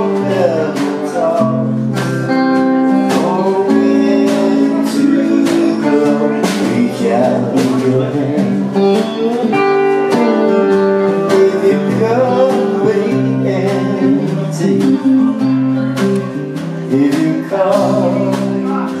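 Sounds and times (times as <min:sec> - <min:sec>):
electric guitar picked: 0:00.0 - 0:19.0
second guitar playing: 0:00.0 - 0:19.0.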